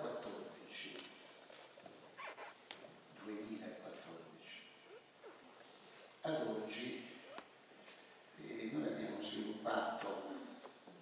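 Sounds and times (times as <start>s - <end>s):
breath close to microphone: 5.6s - 6.2s.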